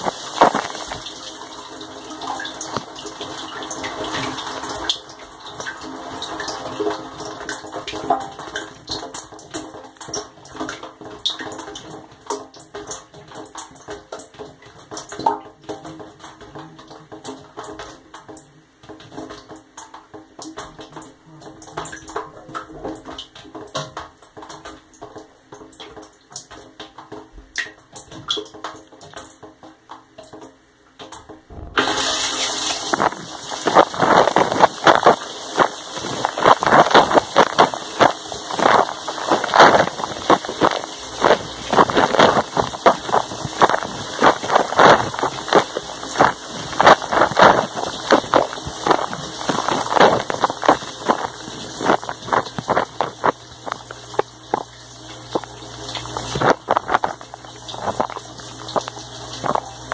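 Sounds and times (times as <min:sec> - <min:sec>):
water dripping on steel walls: 0:00.0 - 0:59.9.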